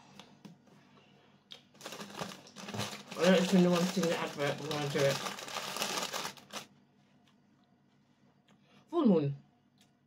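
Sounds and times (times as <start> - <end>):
crinkly handling noise: 1.6 - 7.3.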